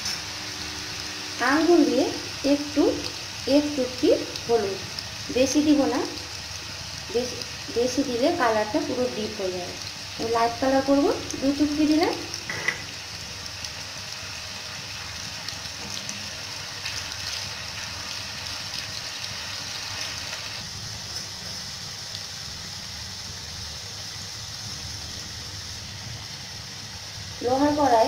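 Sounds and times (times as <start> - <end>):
potatoes deep-frying in oil: 0.0 - 28.0.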